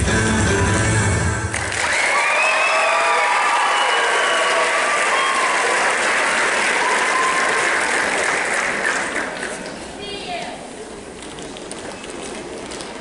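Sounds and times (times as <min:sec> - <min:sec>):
audience applauding: 0:01.5 - 0:09.8
people cheering and whooping: 0:01.7 - 0:07.9.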